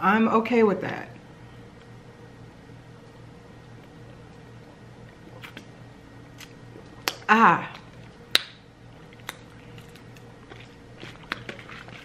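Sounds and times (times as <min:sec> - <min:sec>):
mouth clicks and lip smacks: 0:05.3 - 0:05.7.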